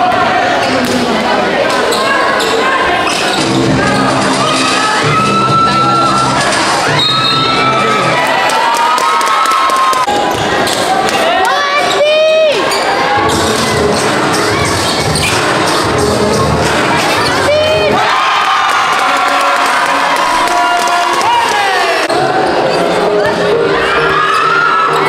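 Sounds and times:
crowd cheering and shouting: 0.0 - 25.0.

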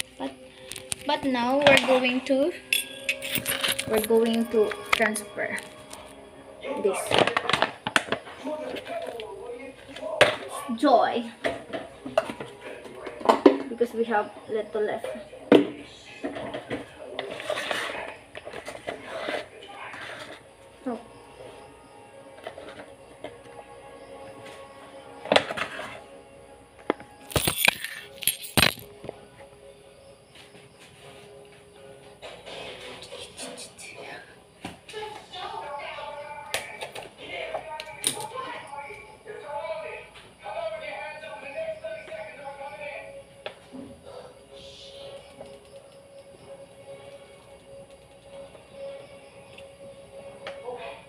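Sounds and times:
background music: 0.0 - 51.0
plastic bottle and funnel clatter: 7.0 - 8.9.

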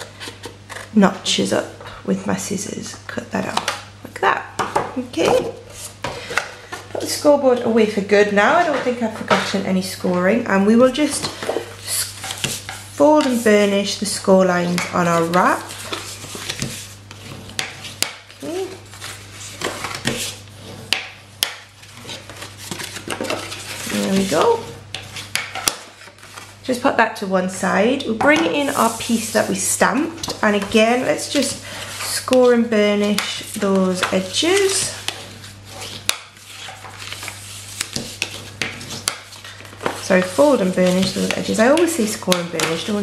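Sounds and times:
paper scraping and rubbing: 10.9 - 14.0, 15.0 - 21.1, 21.8 - 26.7, 28.3 - 29.8, 30.4 - 43.0.

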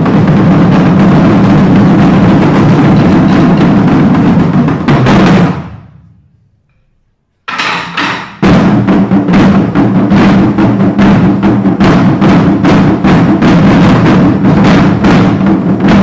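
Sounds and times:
drum ensemble playing: 0.0 - 16.0.

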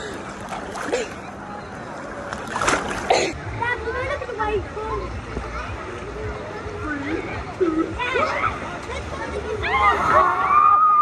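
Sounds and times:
water churning and splashing: 0.0 - 3.5
loud splashes: 2.2 - 3.4.

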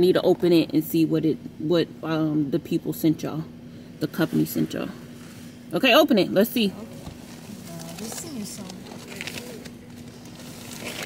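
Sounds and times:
steady low hum: 0.0 - 11.0
quiet voices talking softly: 6.7 - 10.2.

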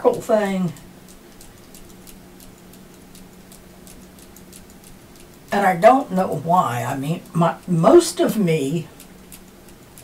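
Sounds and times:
hand-held fan clicking flutter: 0.0 - 10.0
low steady hum: 0.0 - 10.0.

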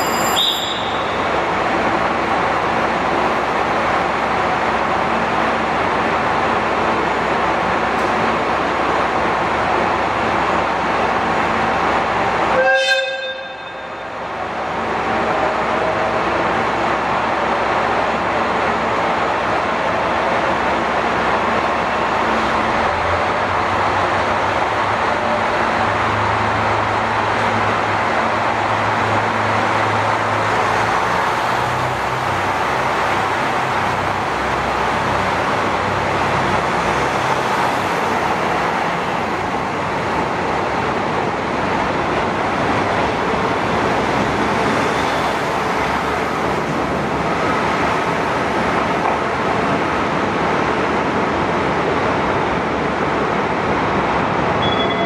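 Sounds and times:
train horn toot: 0.0 - 1.2, 12.5 - 14.0
diesel train engine running: 0.0 - 55.0.

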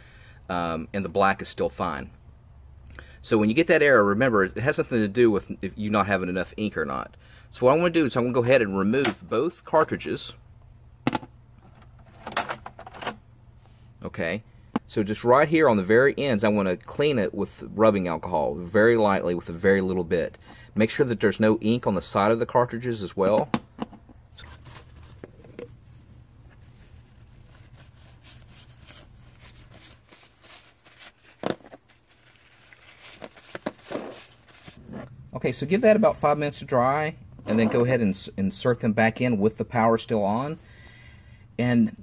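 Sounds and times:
paper towel rubbing plastic: 26.5 - 35.2.

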